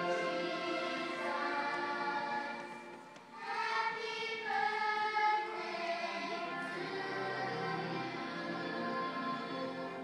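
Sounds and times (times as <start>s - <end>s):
backing music: 0.0s - 10.0s
choir singing a christmas song: 0.0s - 10.0s.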